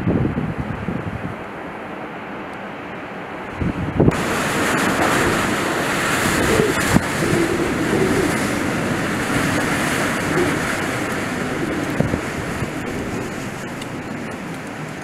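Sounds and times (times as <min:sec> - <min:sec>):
gale force wind rushing: 0:00.0 - 0:02.4, 0:03.2 - 0:15.0
wind howling: 0:00.0 - 0:15.0
wind gusts knocking on microphone: 0:03.5 - 0:15.0.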